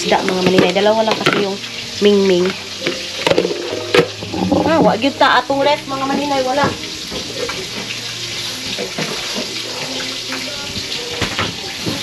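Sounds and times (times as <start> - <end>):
running water hiss: 0.0 - 12.0.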